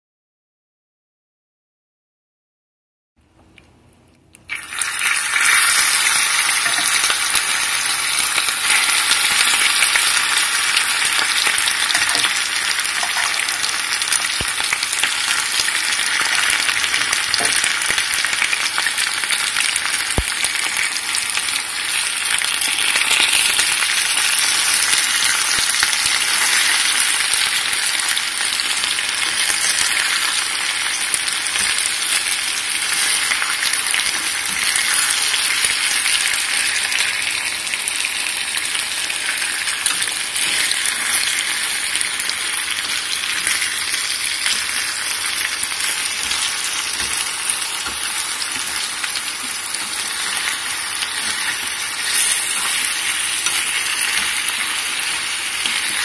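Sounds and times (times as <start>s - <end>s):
pork sizzling in a pot: 4.5s - 56.0s.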